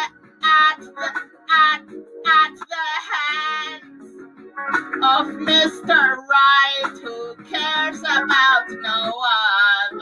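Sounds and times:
person singing: 0:00.0 - 0:03.9, 0:05.0 - 0:10.0
pop backing track with guitar: 0:00.0 - 0:10.0.

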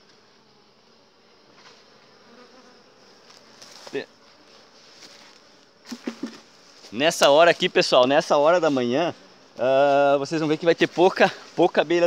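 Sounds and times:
honeybees buzzing: 0:00.0 - 0:12.0
knocks on wooden hive lid: 0:05.9 - 0:06.5.

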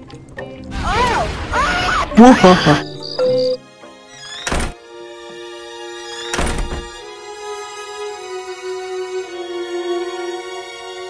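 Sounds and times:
slow sad background music: 0:00.0 - 0:11.0
wooden door shutting thuds: 0:04.5 - 0:04.8, 0:06.3 - 0:07.0.

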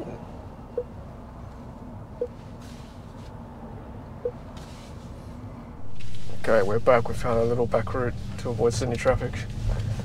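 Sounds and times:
traffic rumble inside car: 0:00.0 - 0:10.0.

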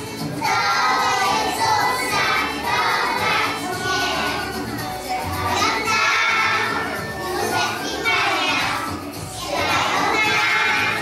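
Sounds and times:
backing music with bass line: 0:00.0 - 0:11.0
children singing and calling out: 0:00.0 - 0:11.0.

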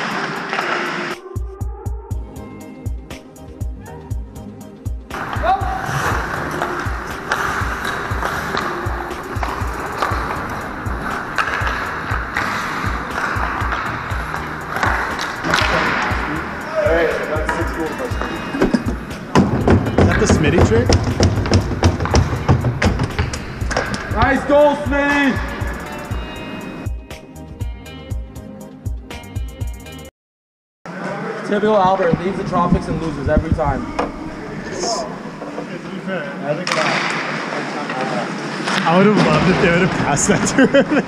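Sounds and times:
clacks of sticks and puck: 0:00.0 - 0:01.1, 0:06.0 - 0:16.2, 0:17.4 - 0:24.2, 0:36.6 - 0:40.6
skates scraping on ice: 0:00.0 - 0:01.2, 0:05.1 - 0:16.5
steady music track: 0:00.0 - 0:30.1
voices shouting: 0:15.8 - 0:18.6.

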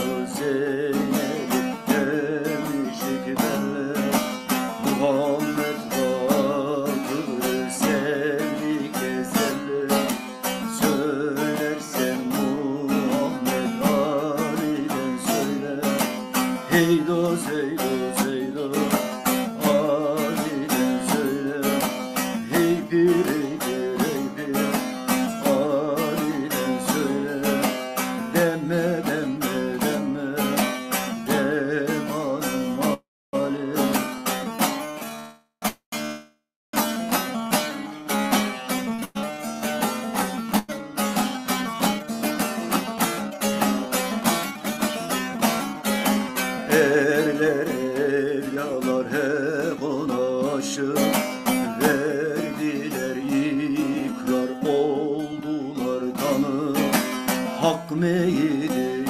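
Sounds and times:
long-necked lute strumming melody: 0:00.0 - 0:59.0.

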